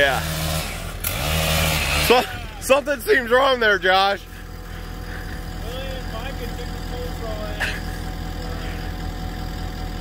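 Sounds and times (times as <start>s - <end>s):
engine idling: 0.0s - 10.0s.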